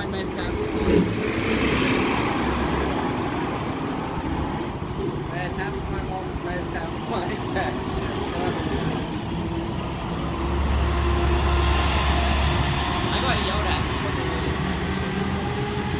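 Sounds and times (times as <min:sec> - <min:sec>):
bus driving past: 0:00.0 - 0:15.9.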